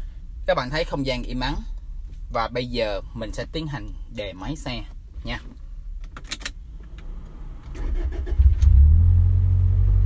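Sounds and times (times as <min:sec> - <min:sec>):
car engine starting and idling: 0:05.7 - 0:10.0.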